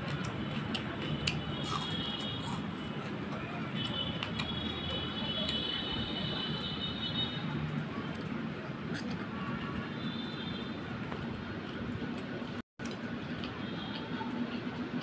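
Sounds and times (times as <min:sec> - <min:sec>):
chewing: 0:00.0 - 0:04.6
steady background noise: 0:00.0 - 0:15.0.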